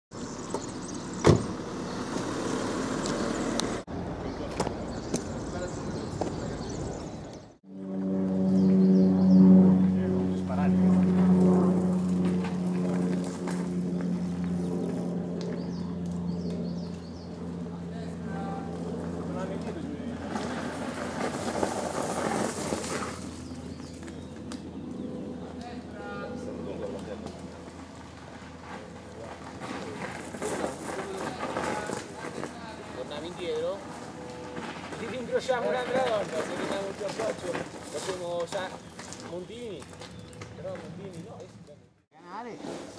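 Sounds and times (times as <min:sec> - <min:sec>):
people chatting outdoors: 0:03.9 - 0:07.5, 0:15.4 - 0:21.0, 0:23.2 - 0:42.8
steady humming tone: 0:06.9 - 0:22.0.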